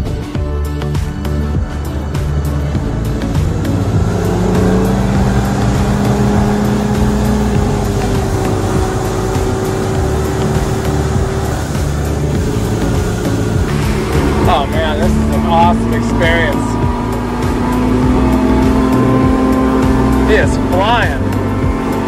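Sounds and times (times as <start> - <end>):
background music: 0.0 - 22.0
outboard engine running: 0.0 - 22.0
wind and water noise: 0.0 - 22.0.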